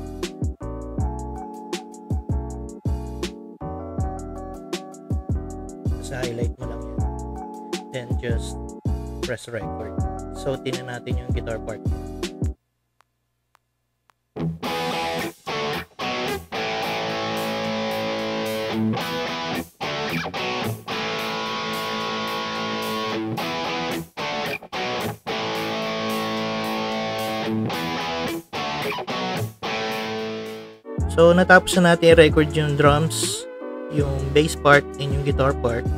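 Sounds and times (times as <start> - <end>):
electric guitar chords: 0.0 - 6.0, 14.4 - 35.9.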